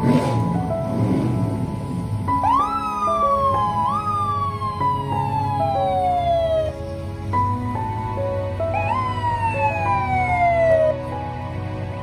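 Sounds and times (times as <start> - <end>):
music with held notes: 0.0 - 12.0
fire engine siren: 2.3 - 6.8, 8.6 - 11.2.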